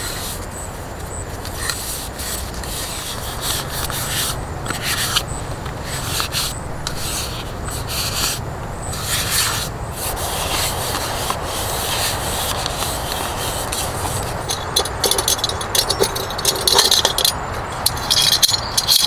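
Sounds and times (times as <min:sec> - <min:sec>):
metallic clicks and scrapes: 0:01.4 - 0:19.0
tissue rubbing inside cup: 0:05.8 - 0:14.5.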